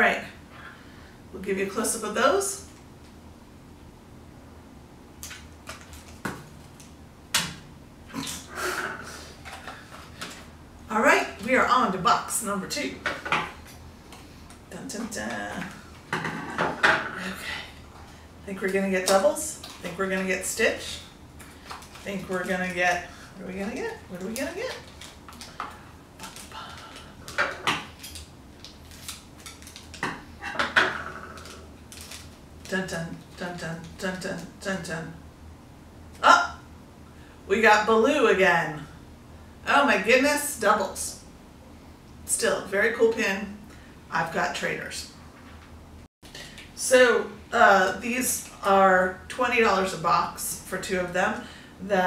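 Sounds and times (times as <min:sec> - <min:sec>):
packaging crackling and tearing: 0:24.7 - 0:25.6, 0:27.9 - 0:30.0, 0:31.4 - 0:32.4.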